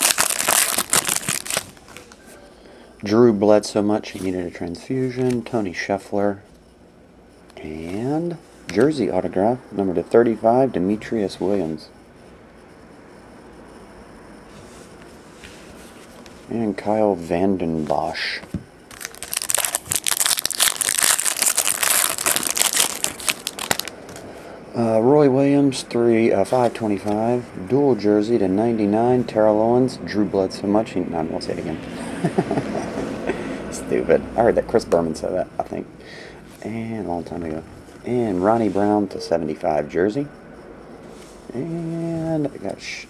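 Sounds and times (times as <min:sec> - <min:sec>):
foil wrapper crinkling: 0:00.0 - 0:02.2, 0:18.9 - 0:24.0.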